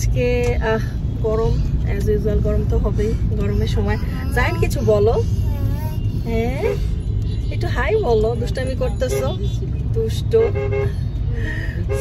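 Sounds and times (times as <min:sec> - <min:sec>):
car interior rumble: 0:00.0 - 0:12.0
child talking: 0:03.4 - 0:06.2.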